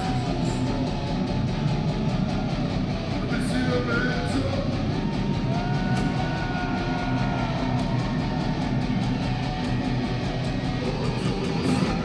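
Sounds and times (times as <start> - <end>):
bass and drums: 0.0 - 12.0
distorted electric guitars: 0.0 - 12.0.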